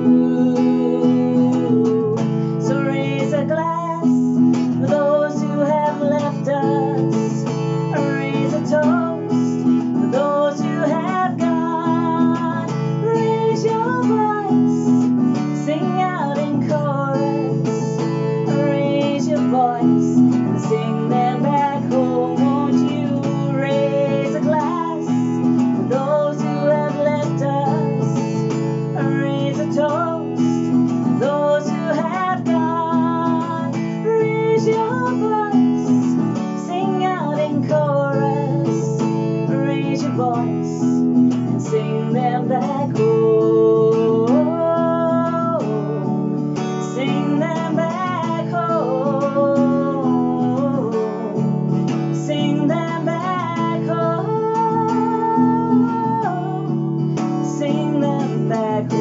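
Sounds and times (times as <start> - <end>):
acoustic guitar strumming: 0.0 - 59.0
woman singing: 0.0 - 59.0.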